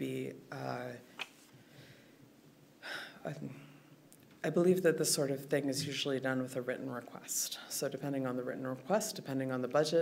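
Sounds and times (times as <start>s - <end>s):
woman inhaling: 1.6s - 2.2s.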